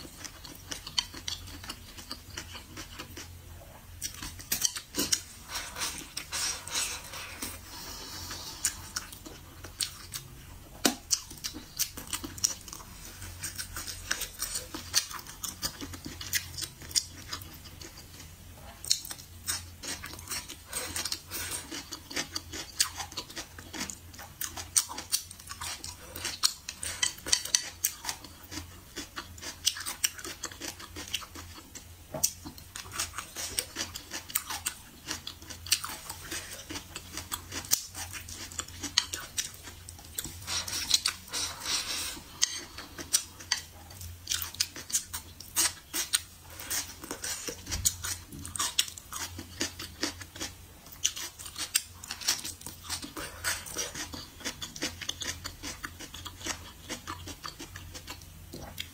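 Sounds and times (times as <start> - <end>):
close-up chewing food: 0.0 - 58.9.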